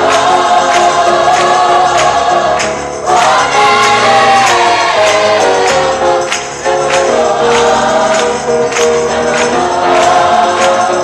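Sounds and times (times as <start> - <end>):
gospel pop song with voices: 0.0 - 11.0.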